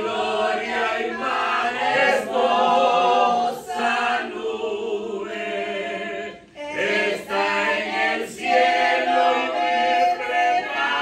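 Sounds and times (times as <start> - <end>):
man and woman singing a hymn: 0.0 - 11.0.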